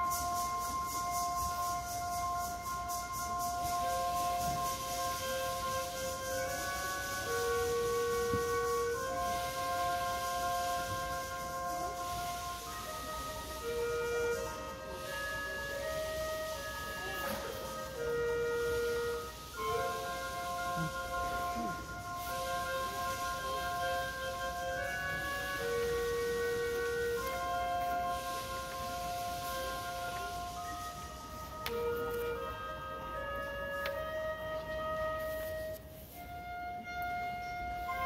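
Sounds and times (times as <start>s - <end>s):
concert band wind chords: 0.0s - 38.0s.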